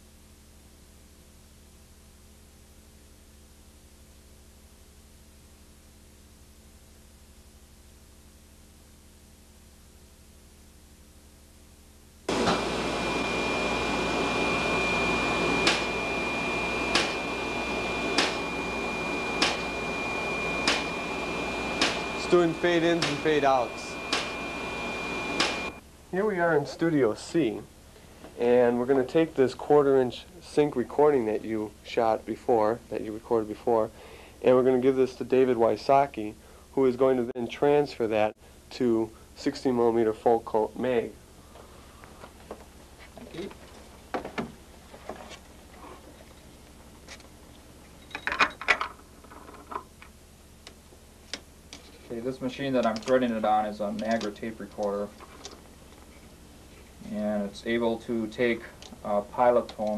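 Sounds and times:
film printer humming and hissing: 0:12.3 - 0:25.8
sharp clicks: 0:15.6 - 0:15.9, 0:16.9 - 0:17.3, 0:20.6 - 0:21.0, 0:21.8 - 0:22.3, 0:24.1 - 0:24.4, 0:25.3 - 0:25.8.

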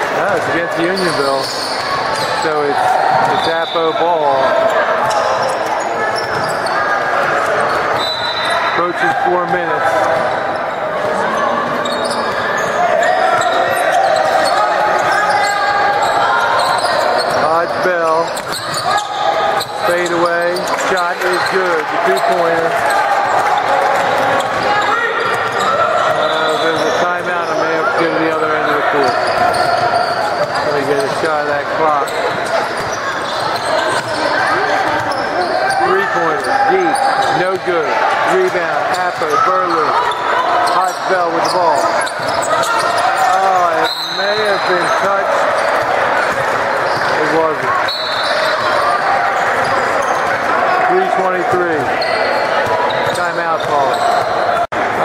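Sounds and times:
voices echoing in hall: 0:00.0 - 0:55.0.

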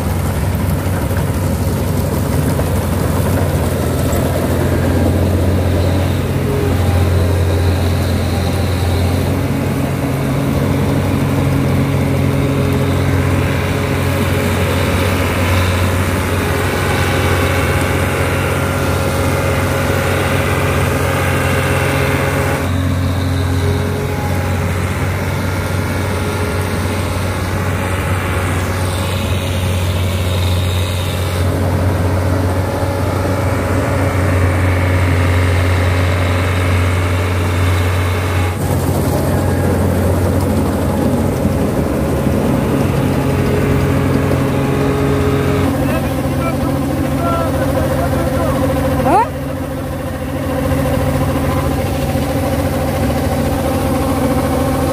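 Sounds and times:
combine harvester engine drone: 0:00.0 - 0:54.9
threshing machinery hum: 0:00.0 - 0:54.9.

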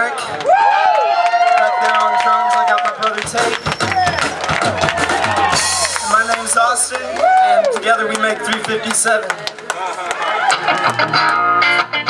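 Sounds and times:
drum and cymbal hits: 0:03.4 - 0:06.9.

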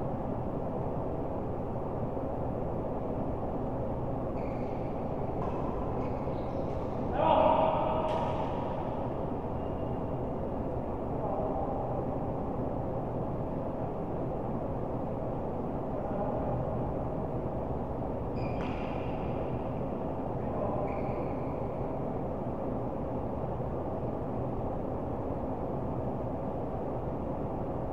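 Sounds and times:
steady background noise: 0:00.0 - 0:27.9.

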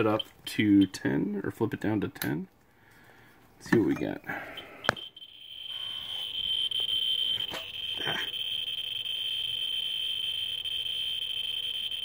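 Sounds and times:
geiger counter clicking buzz: 0:04.6 - 0:12.0.

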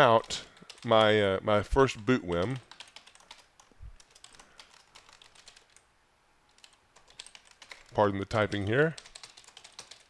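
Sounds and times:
keyboard typing clicks: 0:02.3 - 0:05.8, 0:06.5 - 0:08.0, 0:09.0 - 0:10.0.

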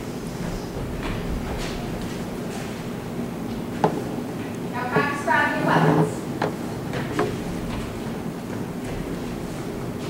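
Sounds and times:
woman calling out: 0:04.8 - 0:06.2.

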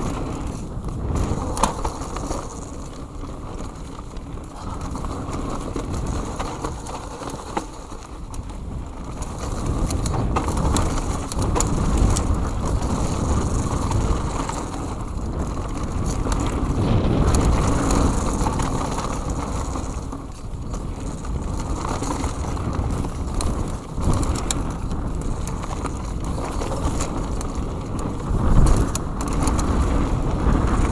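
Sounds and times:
bike clicks and rattles: 0:00.0 - 0:30.9
tyres rolling on dirt: 0:00.0 - 0:30.9
wind rushing over microphone: 0:00.0 - 0:30.9.

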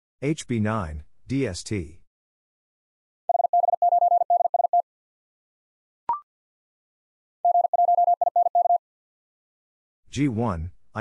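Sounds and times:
morse code beeps: 0:03.3 - 0:04.8, 0:07.4 - 0:08.8.

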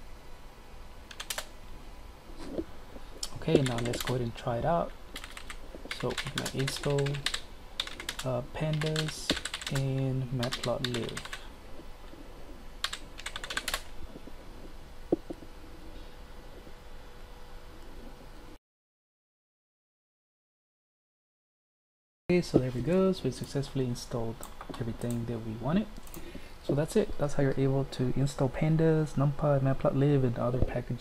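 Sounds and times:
keyboard keystrokes: 0:01.1 - 0:01.5, 0:03.5 - 0:04.2, 0:05.2 - 0:11.4, 0:12.8 - 0:13.9.

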